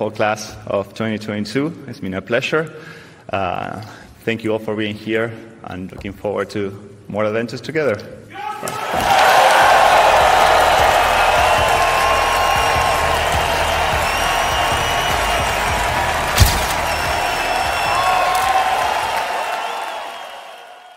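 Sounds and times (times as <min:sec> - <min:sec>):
cheering: 0:08.4 - 0:20.9
audience applauding: 0:08.9 - 0:20.9
sharp knock: 0:16.4 - 0:17.2.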